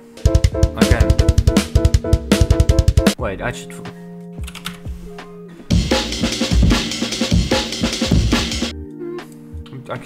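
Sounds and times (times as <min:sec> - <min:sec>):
breakbeat drum loop: 0:00.0 - 0:03.2, 0:05.7 - 0:08.7.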